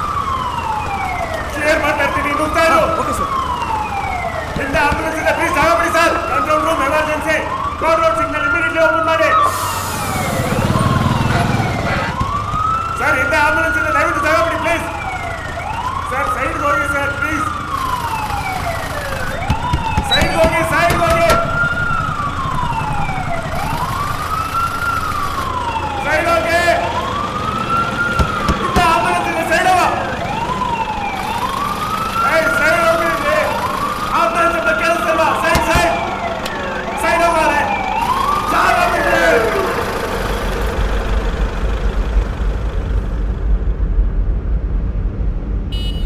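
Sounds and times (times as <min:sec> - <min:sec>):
ambulance siren wailing: 0:00.0 - 0:41.8
car horns honking: 0:19.5 - 0:21.6, 0:45.7 - 0:46.0.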